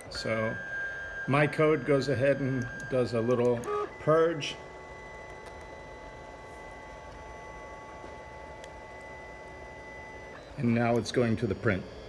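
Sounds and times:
stepper motors whining: 0.0s - 12.0s.

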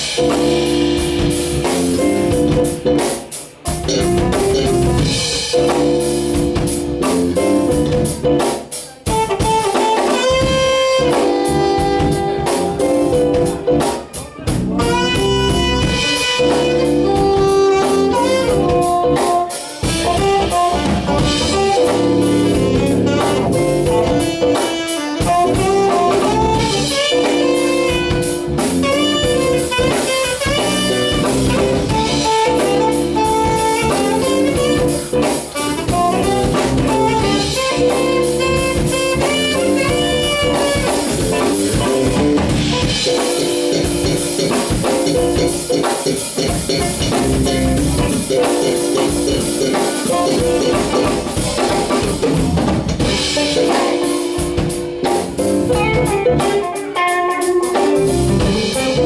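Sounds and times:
drum kit: 0.0s - 59.0s
electric guitar: 0.0s - 59.0s
keyboards: 0.0s - 59.0s
saxophone lead: 3.6s - 8.4s, 9.0s - 59.0s.

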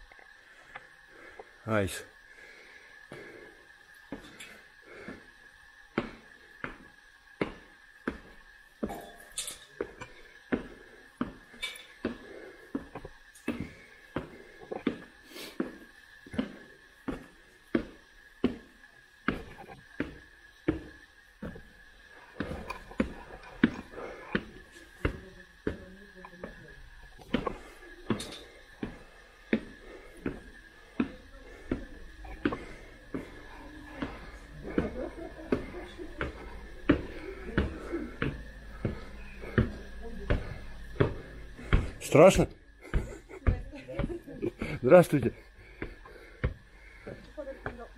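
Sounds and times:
faint high whine: 0.0s - 47.9s
footsteps climbing steps: 5.9s - 9.2s, 9.8s - 47.9s
faint voices: 30.8s - 42.2s.

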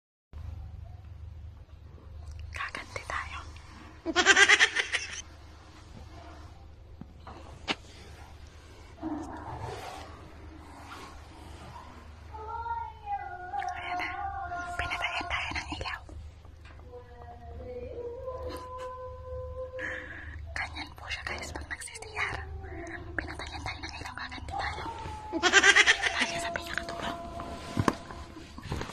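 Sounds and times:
faint low hum: 0.4s - 28.9s
person whispering: 2.3s - 3.6s, 13.4s - 16.2s, 19.8s - 25.2s, 26.1s - 27.8s.

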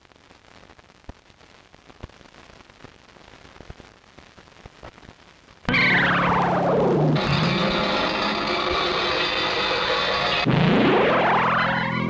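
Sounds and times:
dense synthesizer drone: 5.7s - 12.0s
falling synthesizer sweep: 5.7s - 12.0s.

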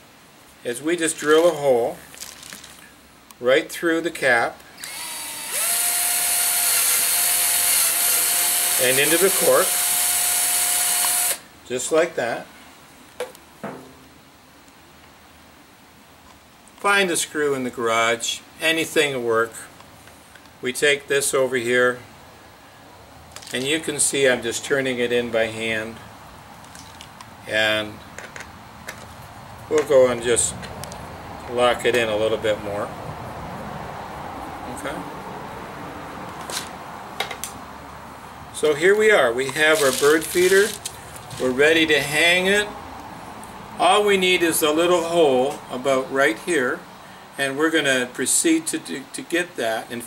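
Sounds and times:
low background noise: 0.0s - 50.0s
hands handling plastic bottle: 1.2s - 2.9s, 38.9s - 41.5s.

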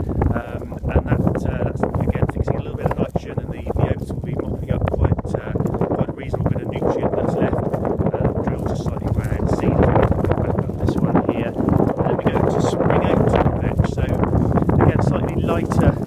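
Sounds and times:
person speaking: 0.0s - 16.0s
wind buffeting microphone: 0.0s - 16.0s.

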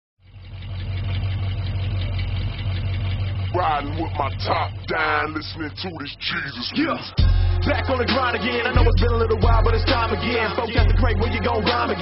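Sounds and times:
car engine idling: 0.2s - 12.0s
man's voice: 3.6s - 12.0s.

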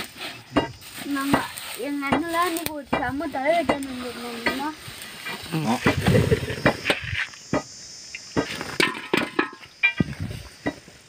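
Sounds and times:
hands rummaging through leaves: 0.0s - 6.5s
person speaking: 1.0s - 6.3s.

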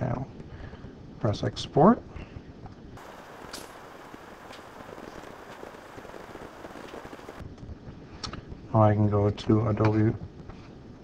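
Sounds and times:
background hiss: 3.0s - 7.4s.

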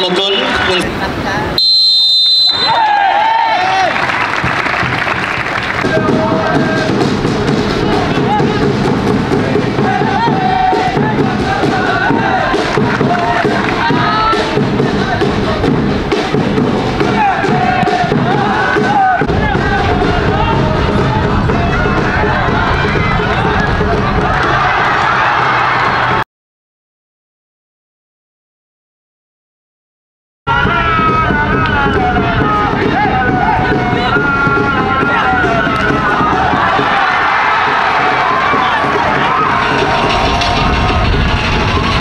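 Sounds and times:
referee's whistle: 0.0s - 0.8s, 1.6s - 3.0s
people shouting: 2.5s - 26.2s, 30.5s - 42.0s
music: 4.2s - 26.2s, 30.5s - 42.0s.

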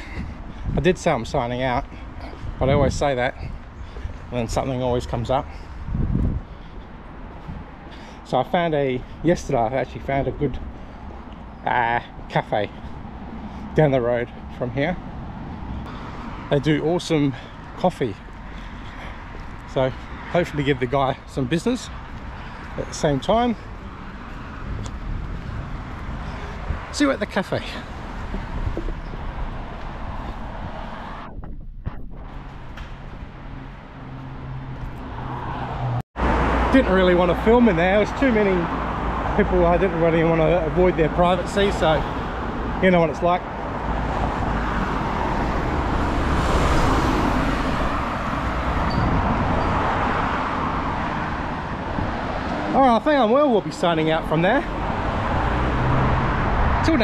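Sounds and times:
road traffic rumble: 0.0s - 57.0s.

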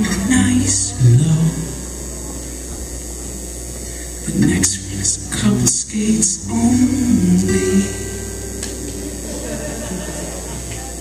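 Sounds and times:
faint crowd murmur: 0.0s - 11.0s
sound system electrical hum: 0.0s - 11.0s.

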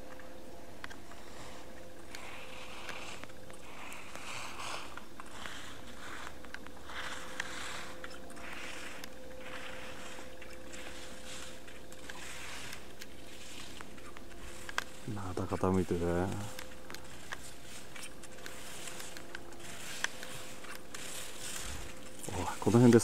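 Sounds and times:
skis scraping across snow: 1.0s - 23.0s.

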